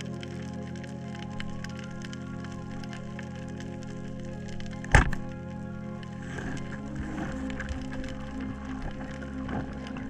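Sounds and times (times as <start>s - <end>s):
background music: 0.0s - 10.0s
speargun firing underwater: 4.9s - 5.3s.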